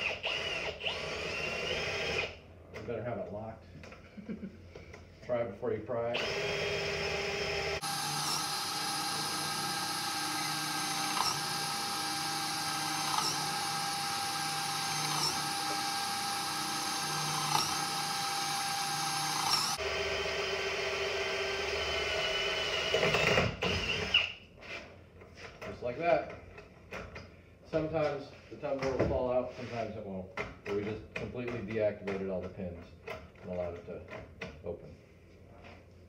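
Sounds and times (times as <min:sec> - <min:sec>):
power drill boring into metal: 0:00.0 - 0:02.3, 0:06.2 - 0:24.4.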